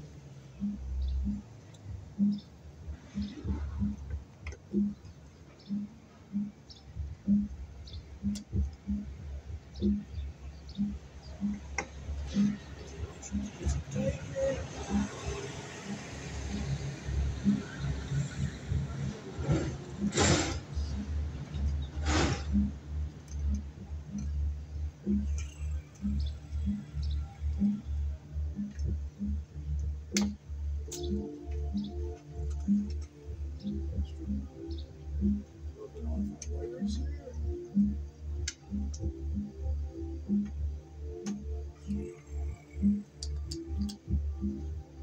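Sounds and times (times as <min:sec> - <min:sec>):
radio music with bass beat: 0:00.0 - 0:45.0.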